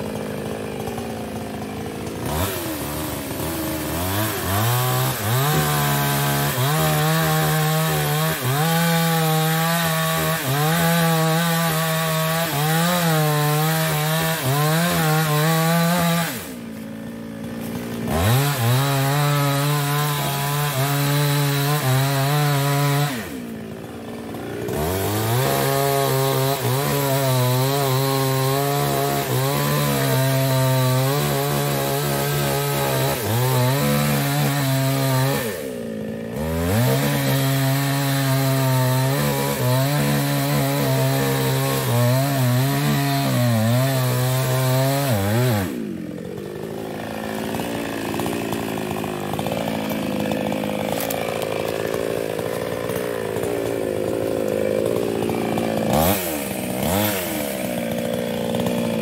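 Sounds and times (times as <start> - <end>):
chainsaw cutting wood: 0.0 - 59.0.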